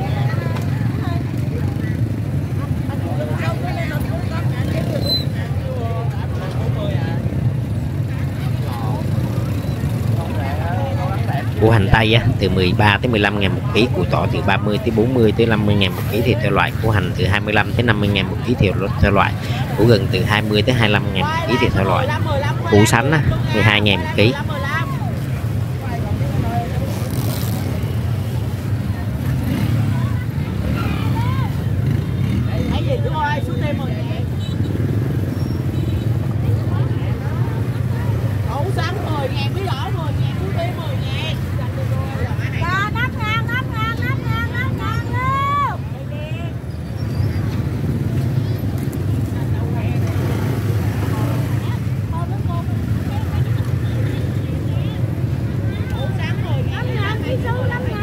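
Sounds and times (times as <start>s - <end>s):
vendors and shoppers talking: 0.0s - 58.0s.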